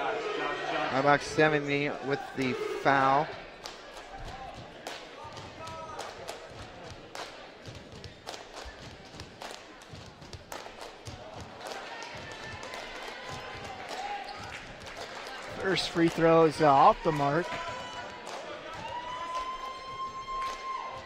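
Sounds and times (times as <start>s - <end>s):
gym crowd chatter: 0.0s - 21.0s.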